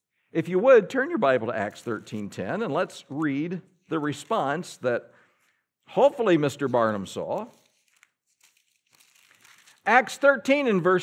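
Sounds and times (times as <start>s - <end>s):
man speaking: 0.4s - 5.1s, 5.9s - 7.6s, 9.8s - 11.0s
pages being turned: 1.6s - 4.8s, 6.0s - 9.9s.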